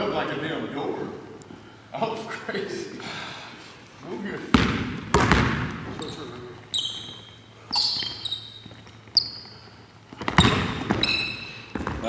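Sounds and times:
sneakers squeaking: 4.5 - 12.0
basketball dribbling on hardwood: 4.6 - 6.0, 10.1 - 12.0.

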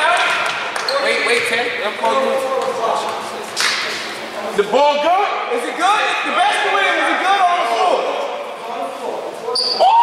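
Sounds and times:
shoe squeaks: 9.5 - 9.9.

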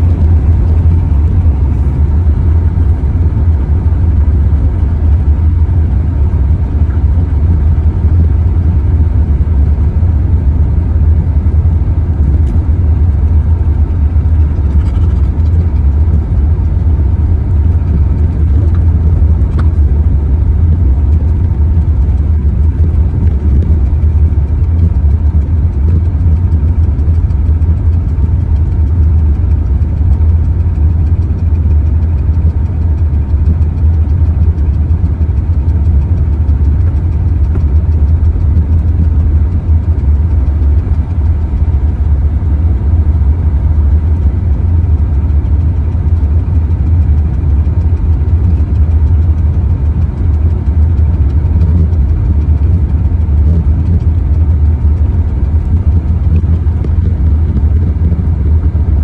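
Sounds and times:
car driving on gravel road: 0.0 - 59.0.

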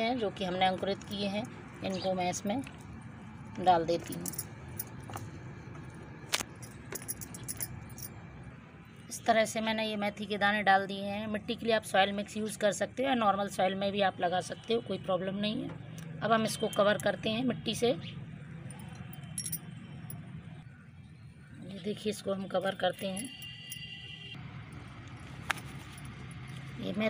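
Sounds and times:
low steady background hum: 0.0 - 27.0
glass bangles clinking: 3.9 - 5.2, 6.4 - 8.2, 18.6 - 20.2, 22.6 - 24.0.

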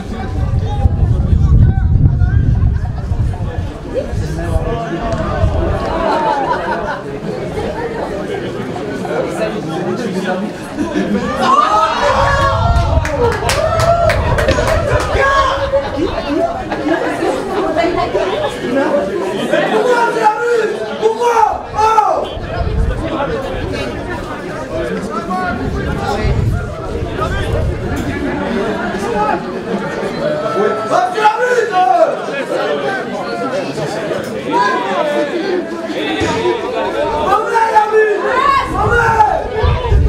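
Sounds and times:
overlapping chatter: 0.0 - 40.0.

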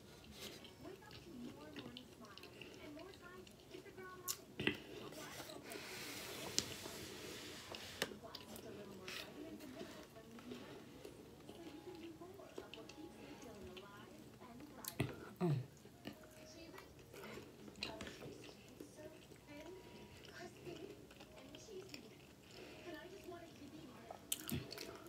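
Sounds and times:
faint television voices: 0.0 - 25.0
person chewing: 0.0 - 25.0.

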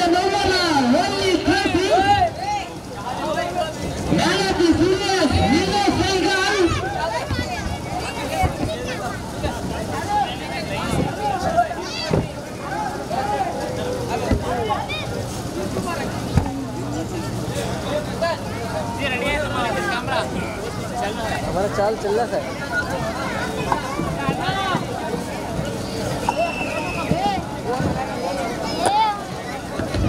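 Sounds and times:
people talking: 0.0 - 30.0.

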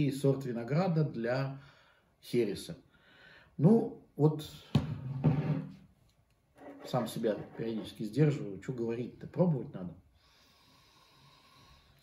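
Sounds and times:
man speaking: 6.7 - 10.0.

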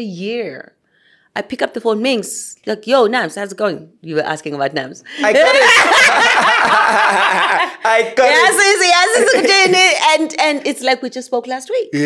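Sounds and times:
woman speaking: 0.0 - 0.8, 1.4 - 5.6, 8.2 - 12.0
woman laughing loudly: 5.2 - 7.9, 8.6 - 10.1.

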